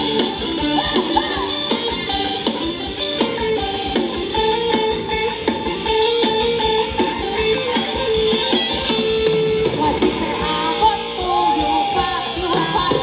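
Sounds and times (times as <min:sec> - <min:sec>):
live band playing dance tune: 0:00.0 - 0:13.0.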